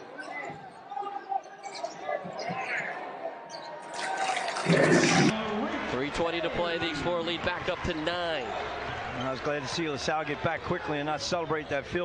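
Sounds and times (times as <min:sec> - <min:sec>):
crowd cheering: 0:02.2 - 0:12.0.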